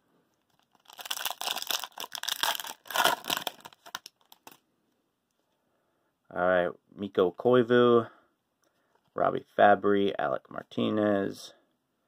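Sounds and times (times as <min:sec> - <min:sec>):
foil wrapper tearing and crinkling: 0:00.5 - 0:04.6.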